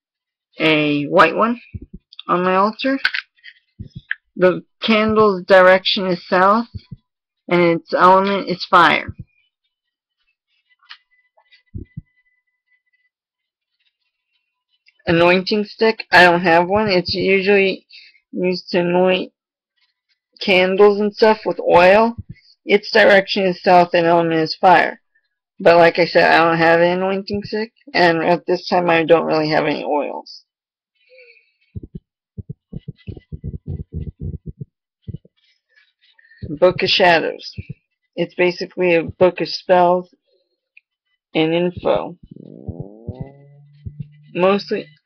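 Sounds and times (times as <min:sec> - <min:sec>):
dull low thumps: 0:01.7 - 0:02.1, 0:03.8 - 0:04.2, 0:06.7 - 0:07.0, 0:09.0 - 0:09.3, 0:11.7 - 0:12.1, 0:22.2 - 0:22.4, 0:31.8 - 0:35.3, 0:41.8 - 0:44.9
high-pitched whine: 0:41.8 - 0:45.0.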